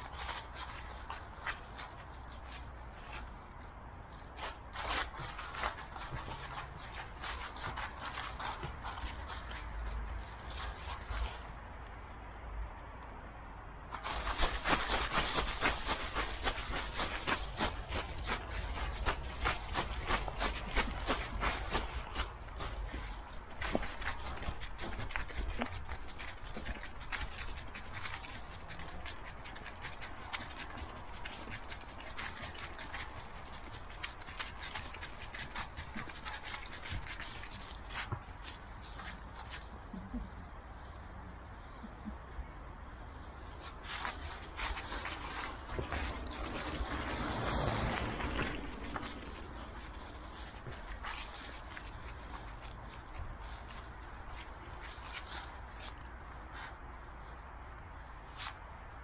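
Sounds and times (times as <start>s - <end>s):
dry leaves crunching under paws: 0.0s - 11.5s, 13.9s - 40.3s, 43.4s - 59.0s.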